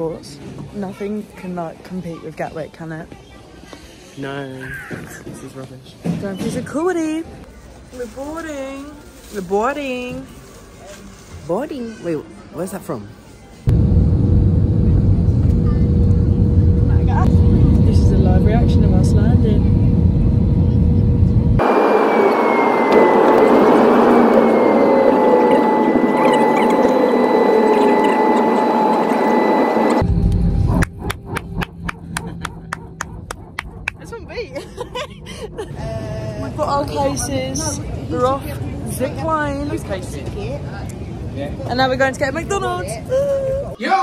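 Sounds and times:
jet engines rumbling: 13.7s - 40.2s.

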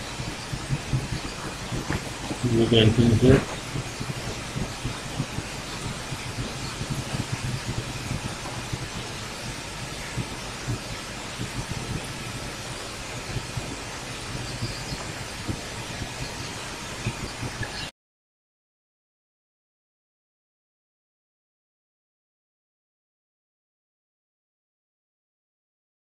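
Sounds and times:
background hiss: 0.0s - 17.9s.

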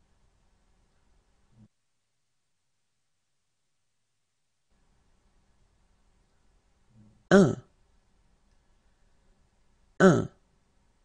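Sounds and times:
person saying a word: 10.0s - 10.4s.

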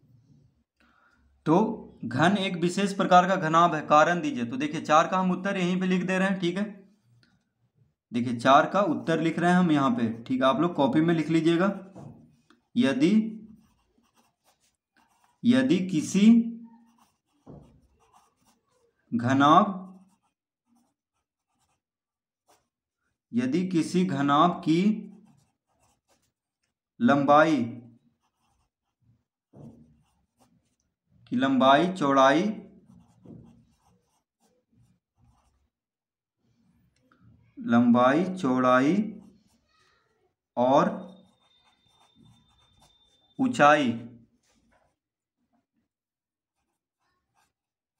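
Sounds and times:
pencil scratching on paper: 8.6s - 26.8s, 28.0s - 31.0s, 31.8s - 35.8s, 38.8s - 39.7s, 41.0s - 43.6s, 44.4s - 45.3s, 46.4s - 47.8s.

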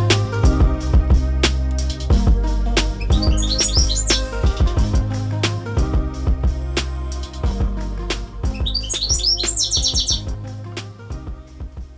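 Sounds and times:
background music with steady beat: 0.0s - 11.9s
bird chirping and trilling: 3.0s - 4.6s, 8.5s - 10.3s.

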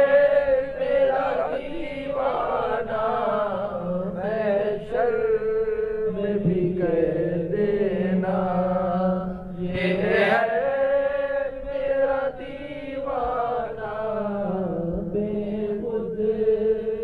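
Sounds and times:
man chanting in held notes: 0.0s - 17.0s.

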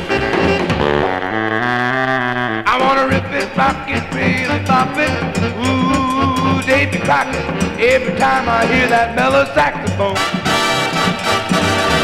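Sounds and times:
saxophone and brass band playing: 0.0s - 12.0s.

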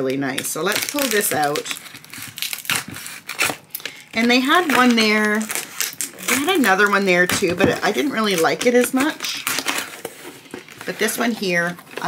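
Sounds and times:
packaging rustling and tearing: 0.0s - 12.0s.

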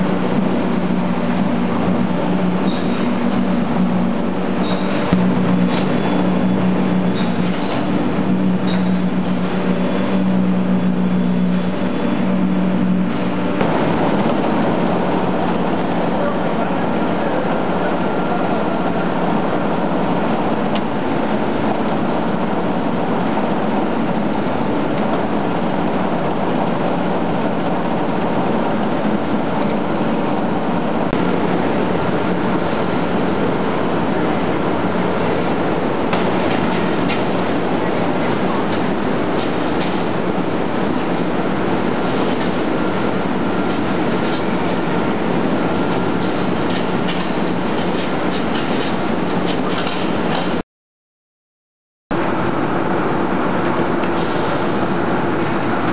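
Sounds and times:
machinery hum: 0.0s - 50.6s, 52.1s - 55.9s.

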